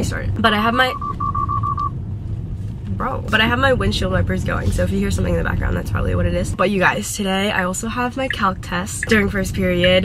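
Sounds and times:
car cabin rumble: 0.0s - 10.0s
short high electronic beeps: 0.9s - 1.9s.

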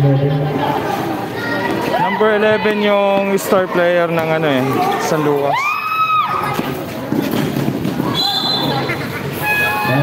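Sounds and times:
crowd noise: 0.0s - 10.0s
horn-like tone: 9.4s - 10.0s.

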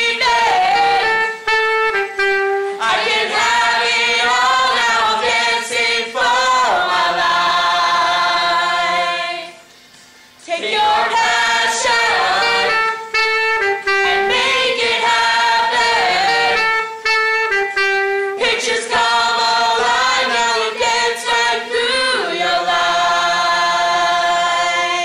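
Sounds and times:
choir singing a cappella: 0.0s - 9.7s, 10.4s - 25.0s.

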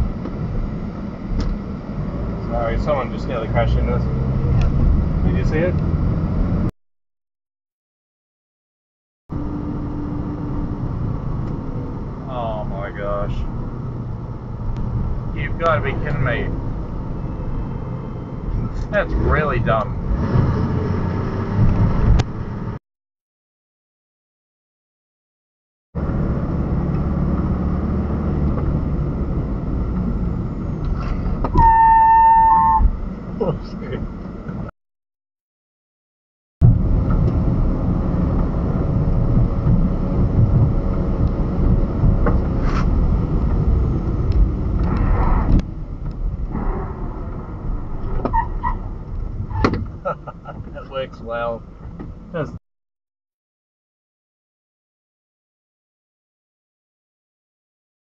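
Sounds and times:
engine and road rumble: 0.0s - 6.8s, 9.3s - 22.8s, 26.0s - 34.7s, 36.6s - 52.6s.

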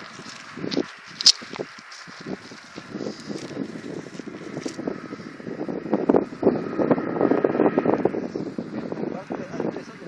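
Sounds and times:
gusty wind buffeting microphone: 0.0s - 10.0s.

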